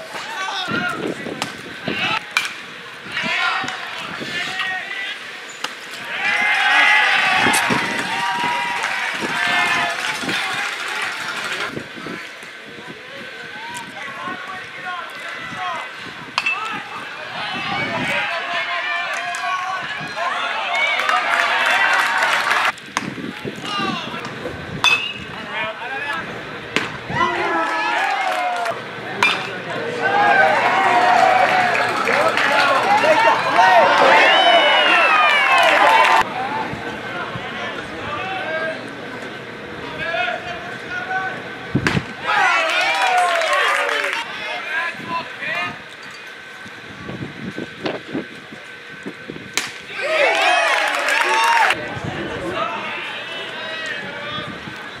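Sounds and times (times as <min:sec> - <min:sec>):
people shouting and chattering: 0:00.0 - 0:55.0.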